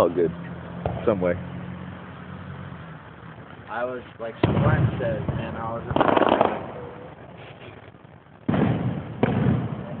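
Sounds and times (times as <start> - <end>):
fireworks exploding: 3.4 - 10.0.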